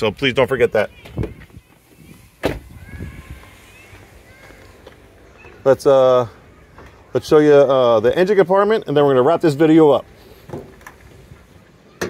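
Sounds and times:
faint high chirps: 0:00.7 - 0:07.2
footsteps on asphalt: 0:01.0 - 0:05.6
car door shutting: 0:02.4 - 0:02.7.

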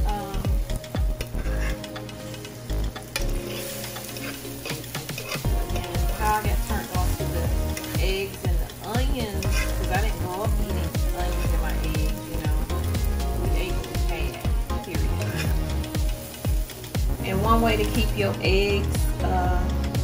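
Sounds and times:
eggs sizzling in a skillet: 0:00.0 - 0:20.0
music with bass beat: 0:00.0 - 0:20.0
fork scraping pan: 0:01.2 - 0:06.9, 0:09.3 - 0:10.0, 0:15.2 - 0:15.7.

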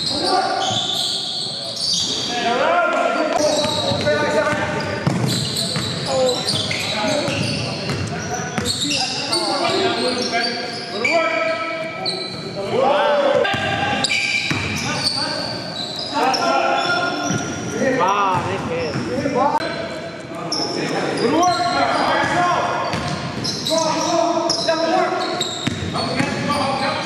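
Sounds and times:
players calling out: 0:00.0 - 0:27.0
sneakers squeaking: 0:00.0 - 0:27.0.

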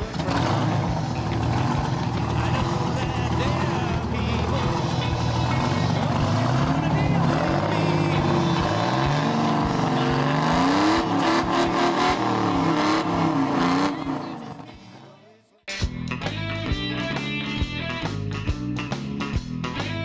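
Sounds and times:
diesel engine revving: 0:00.0 - 0:15.3.

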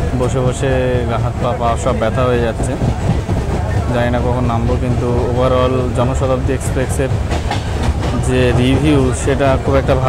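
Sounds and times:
train rumbling from inside coach: 0:00.0 - 0:10.0
voices: 0:00.0 - 0:10.0.

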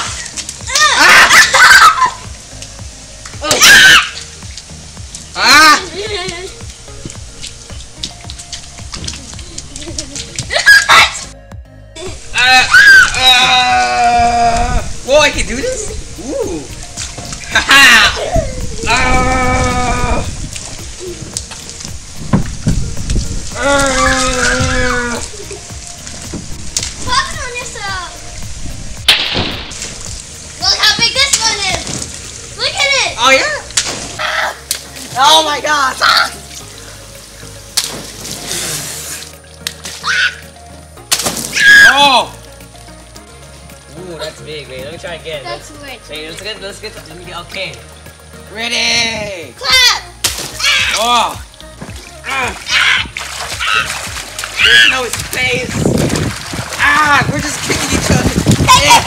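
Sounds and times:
children shouting: 0:00.0 - 0:02.2, 0:03.4 - 0:04.2, 0:10.5 - 0:11.3, 0:12.3 - 0:14.8, 0:17.5 - 0:20.3, 0:23.6 - 0:25.5, 0:35.9 - 0:36.4, 0:40.0 - 0:40.5, 0:41.5 - 0:42.3, 0:49.6 - 0:51.3, 0:52.2 - 0:55.1, 0:58.6 - 0:59.0
water balloons splashing: 0:00.0 - 0:11.4, 0:12.0 - 0:44.6, 0:49.6 - 0:59.0
background music: 0:00.0 - 0:59.0.

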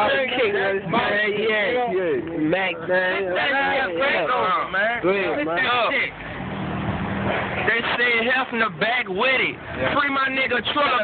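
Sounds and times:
street noise: 0:00.0 - 0:11.0
vehicle engine humming: 0:00.0 - 0:11.0.

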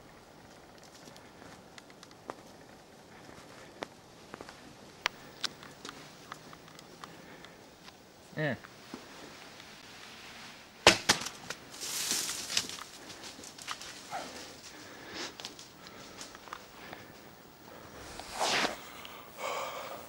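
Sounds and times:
sharp crack: 0:10.8 - 0:11.6
rustling and snaps in dry leaves: 0:10.8 - 0:14.8
person exhaling loudly: 0:18.4 - 0:20.0.

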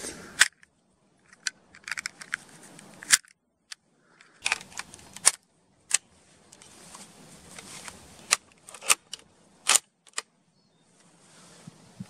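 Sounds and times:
cartridges clicking into magazine: 0:01.3 - 0:03.3, 0:04.2 - 0:06.0, 0:08.2 - 0:10.3.

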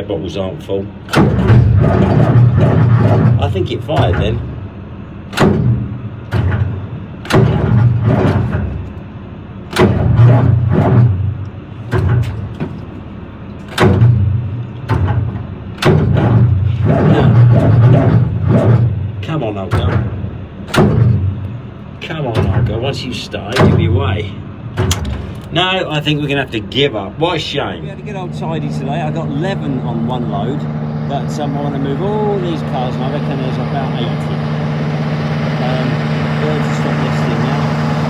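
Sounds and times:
engine starter cranking: 0:01.0 - 0:04.6, 0:13.6 - 0:26.4.

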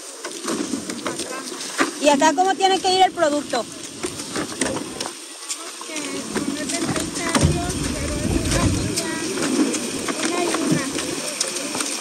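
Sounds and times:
celery stalks and plastic rustling: 0:00.0 - 0:12.0
water hissing from hose nozzle: 0:00.0 - 0:12.0
faint voices: 0:01.1 - 0:12.0
low rumble: 0:06.4 - 0:10.2.

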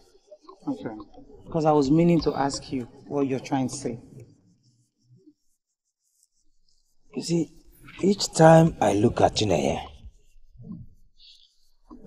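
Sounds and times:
person speaking: 0:00.7 - 0:04.3, 0:07.2 - 0:10.1.

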